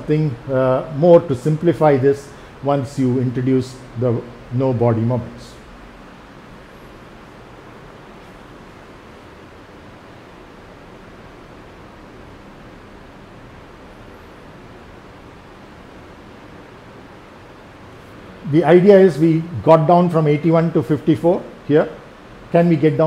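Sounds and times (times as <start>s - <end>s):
room noise hiss: 0.0s - 23.0s.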